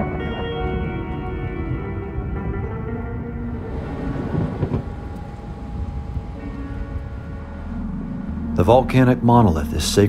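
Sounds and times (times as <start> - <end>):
background music held tones: 0.0 - 10.0
thunder rumbling: 0.0 - 10.0
rain hissing: 3.6 - 8.7.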